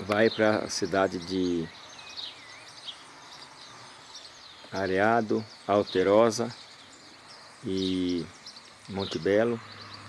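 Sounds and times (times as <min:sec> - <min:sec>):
background hiss: 0:00.0 - 0:10.0
birds chirping: 0:00.0 - 0:10.0.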